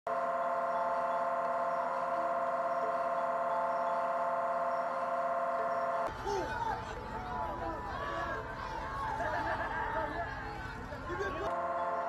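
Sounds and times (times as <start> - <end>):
electronic drone chord: 0.1 - 6.1, 11.5 - 12.0.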